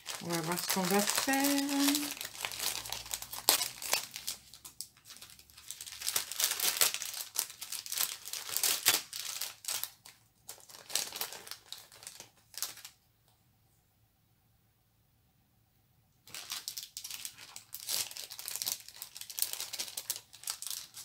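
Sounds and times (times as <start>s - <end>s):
plastic packets crinkling: 0.0s - 13.0s, 16.2s - 21.0s.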